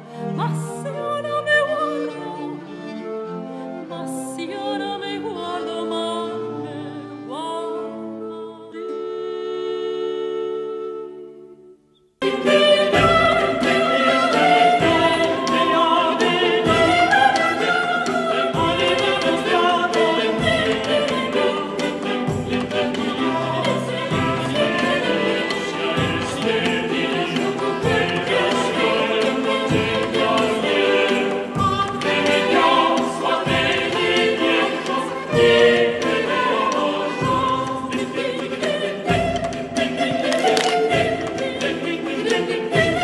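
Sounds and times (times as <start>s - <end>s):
voices singing together: 12.2s - 43.0s.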